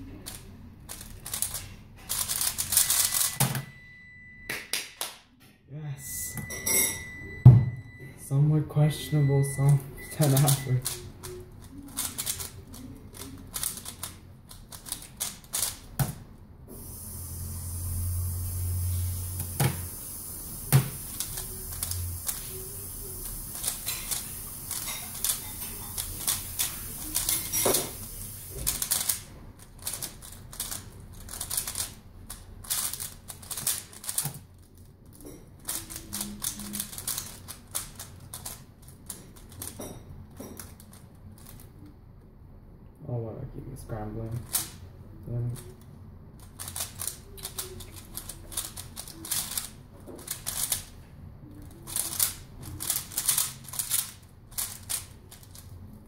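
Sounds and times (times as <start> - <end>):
puzzle cube layers clicking: 0.2 - 3.4, 10.2 - 15.9.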